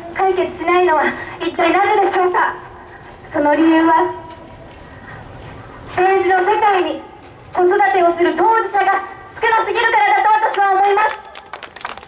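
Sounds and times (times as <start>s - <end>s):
woman's amplified speech: 0.0s - 2.7s, 3.3s - 4.3s, 5.9s - 11.4s
busy railway station background: 0.0s - 12.0s.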